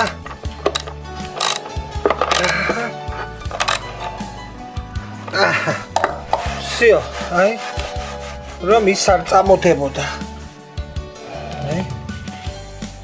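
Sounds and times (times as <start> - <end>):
ratchet wrench clicking: 0.0 - 2.8, 3.4 - 4.2
background music: 0.0 - 13.0
person speaking: 5.3 - 10.2.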